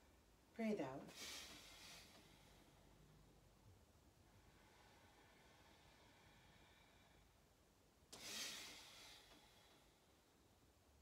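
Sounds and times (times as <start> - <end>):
person exhaling forcefully: 8.2 - 9.3.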